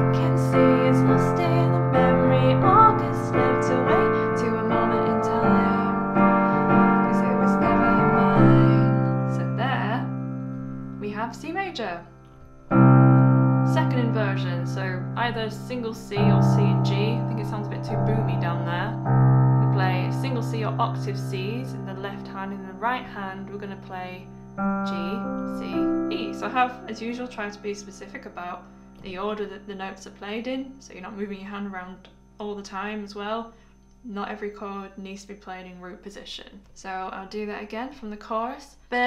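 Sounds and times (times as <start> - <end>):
piano playing held chords: 0.0 - 29.7.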